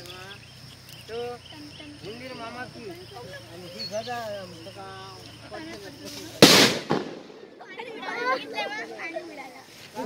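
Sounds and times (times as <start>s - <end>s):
firecracker bang: 6.1s - 7.7s.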